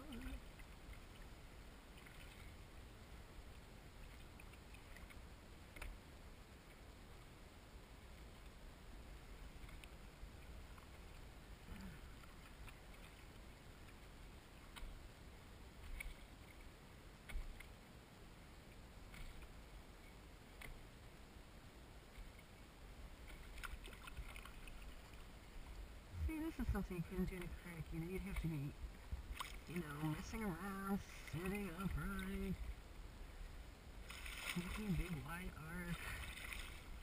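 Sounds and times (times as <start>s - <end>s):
small waves lapping against hull: 0.0s - 37.0s
soft splashes and knocks: 23.2s - 32.8s, 34.0s - 37.0s.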